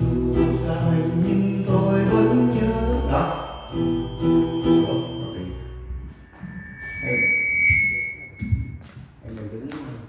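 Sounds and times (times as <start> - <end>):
acoustic guitar playing: 0.0 - 8.4
held high ringing tone: 0.0 - 8.8
scattered bass guitar notes: 0.0 - 8.8.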